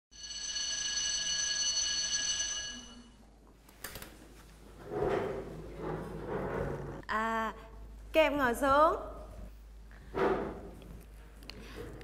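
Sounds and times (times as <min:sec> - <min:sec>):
school bell ringing: 0:00.1 - 0:03.2.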